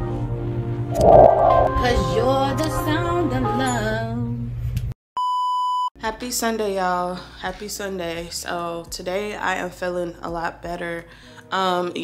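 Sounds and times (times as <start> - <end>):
electronic beep: 1.0 - 1.8.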